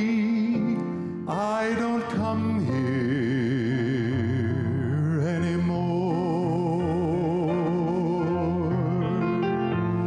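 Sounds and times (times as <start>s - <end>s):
man singing gospel song: 0.0s - 9.6s
instrumental accompaniment: 0.0s - 10.0s.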